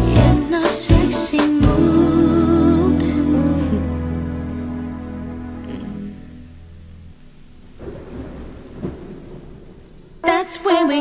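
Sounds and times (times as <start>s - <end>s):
rain hiss: 7.0s - 10.3s
thunder rumble: 7.6s - 10.6s.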